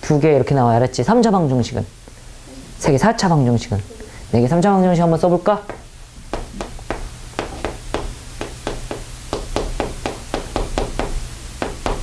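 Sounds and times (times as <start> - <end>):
low steady hum: 0.0 - 12.0
chalk tapping on blackboard: 5.6 - 12.0.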